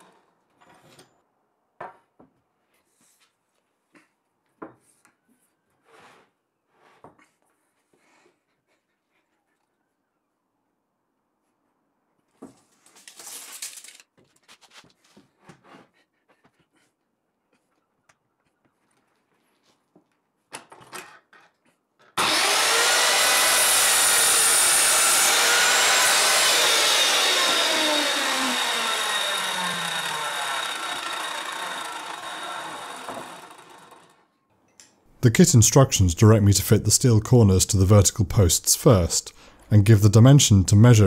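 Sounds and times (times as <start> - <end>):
mitre saw cutting wood: 0.0 - 0.2, 22.2 - 34.3.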